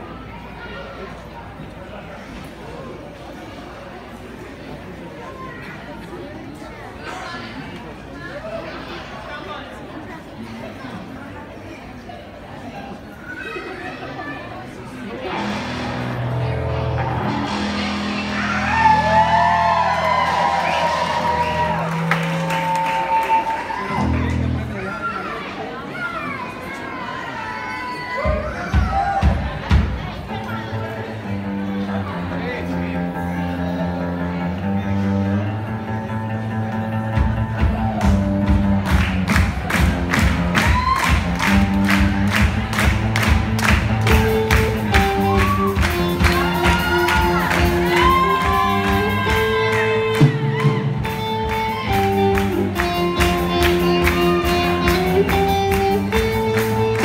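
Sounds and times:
bass guitar sustained notes: 0:15.2 - 0:22.7, 0:23.9 - 0:24.8, 0:30.6 - 0:57.0
electric guitar bending notes: 0:15.3 - 0:18.8, 0:41.2 - 0:57.0
drum kit steady beat: 0:37.2 - 0:57.0.

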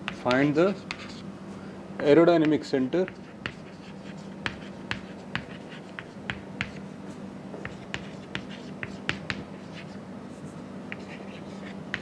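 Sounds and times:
chalk tapping on chalkboard: 0:00.0 - 0:01.2, 0:02.4 - 0:06.9, 0:07.6 - 0:10.0, 0:10.9 - 0:12.0.

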